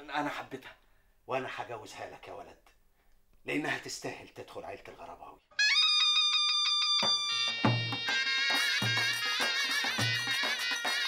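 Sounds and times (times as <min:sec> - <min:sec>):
drum strokes: 0:06.0 - 0:11.0.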